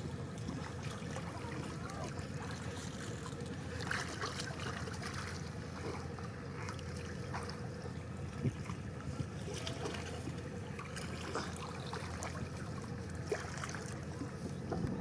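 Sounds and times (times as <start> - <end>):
steady low rumble: 0.0 - 15.0
water splashing and trickling: 0.0 - 15.0.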